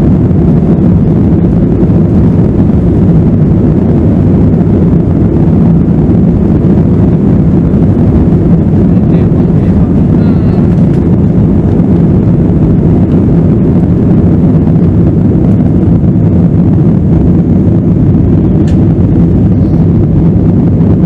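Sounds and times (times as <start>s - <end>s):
jet engines rumbling in cabin: 0.0s - 21.0s.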